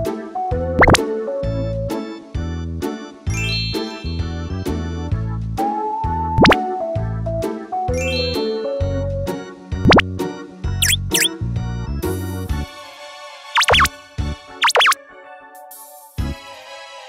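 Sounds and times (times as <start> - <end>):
cheerful children's music: 0.0 - 17.0
rising whistle sound effect: 10.8 - 11.3, 13.6 - 13.9, 14.6 - 15.0.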